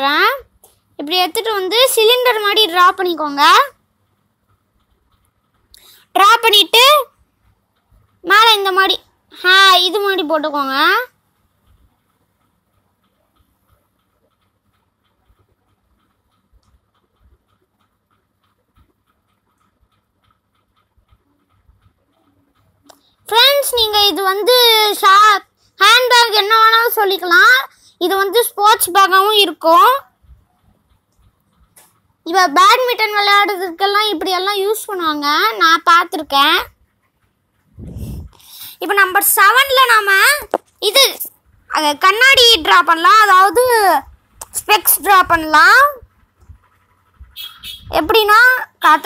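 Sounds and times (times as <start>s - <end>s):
child speaking: 0.0s - 3.8s, 5.8s - 7.2s, 8.2s - 11.2s, 22.9s - 30.2s, 32.2s - 36.8s, 37.9s - 46.1s, 47.6s - 49.0s
pencil scratching on paper: 11.3s - 24.4s, 42.1s - 49.0s.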